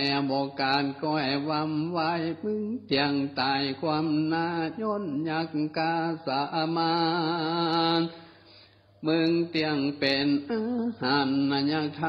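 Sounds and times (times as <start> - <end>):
monk chanting: 0.0 - 8.2, 9.0 - 12.0.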